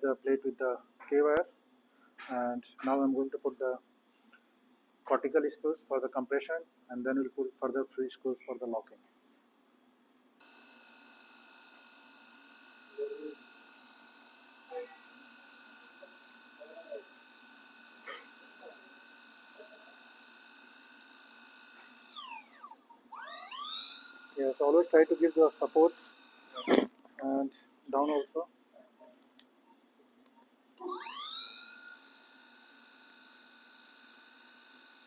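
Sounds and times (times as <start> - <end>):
power drill whining: 10.4 - 27.0, 30.8 - 35.0
man murmuring: 28.0 - 28.4.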